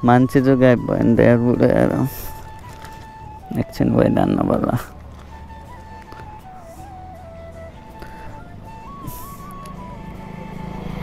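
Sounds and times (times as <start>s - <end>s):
flute-like background music: 0.0s - 11.0s
low engine hum: 0.0s - 11.0s.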